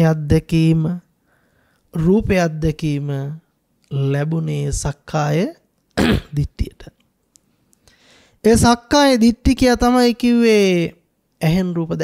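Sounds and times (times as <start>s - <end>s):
man speaking into a microphone: 0.0s - 1.1s, 1.9s - 7.0s, 8.4s - 12.0s.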